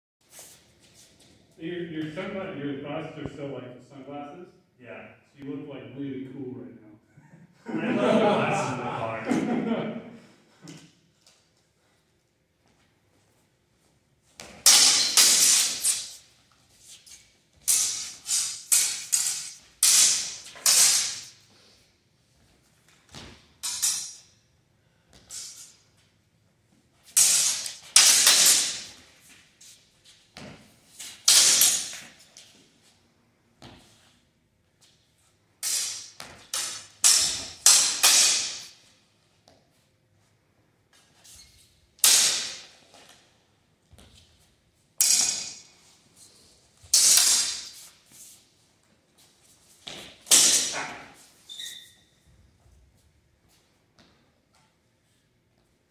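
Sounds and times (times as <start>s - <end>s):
sword blades clashing: 14.4s - 16.2s, 17.6s - 21.4s, 23.6s - 24.3s, 27.1s - 29.0s, 31.2s - 32.2s, 35.6s - 38.8s, 42.0s - 42.8s, 45.0s - 45.8s, 46.9s - 48.0s, 50.2s - 51.2s.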